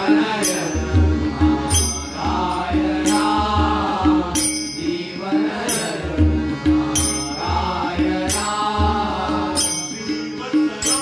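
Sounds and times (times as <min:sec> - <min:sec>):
men chanting: 0:00.0 - 0:11.0
tabla playing: 0:00.0 - 0:11.0.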